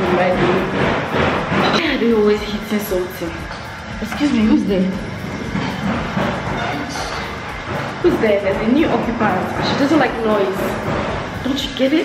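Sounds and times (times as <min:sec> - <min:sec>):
workers hitting something: 0:00.0 - 0:11.9
construction rattling and rumbling: 0:00.0 - 0:12.0.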